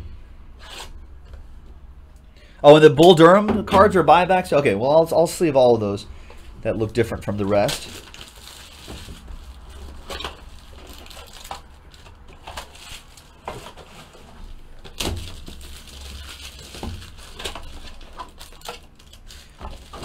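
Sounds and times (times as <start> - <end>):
plastic wrapping crinkling: 6.8 - 20.0.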